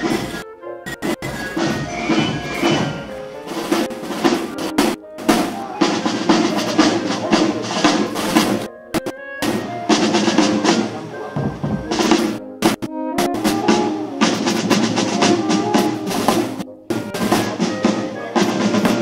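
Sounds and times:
marching band melody: 0:00.0 - 0:19.0
snare drums rolling: 0:00.0 - 0:19.0.

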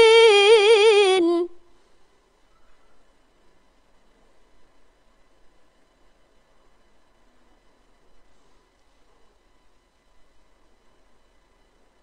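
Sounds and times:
woman reciting melodically: 0:00.0 - 0:01.6.

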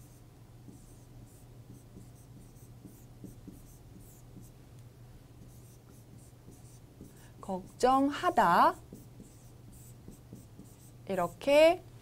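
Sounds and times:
marker pen writing on board: 0:00.0 - 0:04.5, 0:05.4 - 0:07.8, 0:08.7 - 0:11.0.

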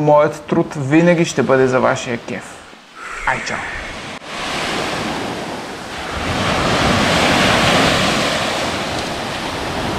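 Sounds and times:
wind rumbling on microphone: 0:02.9 - 0:09.9
sea surf breaking on beach: 0:03.0 - 0:09.9.

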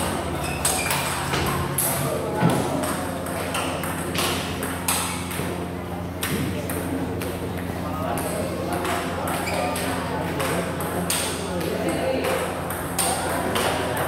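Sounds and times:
background chatter: 0:00.0 - 0:14.0
steady low hum: 0:00.0 - 0:14.0.

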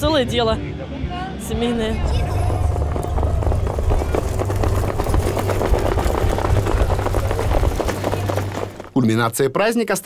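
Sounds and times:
low rumble: 0:01.5 - 0:08.9
horse hooves trotting on dirt: 0:02.0 - 0:09.2.

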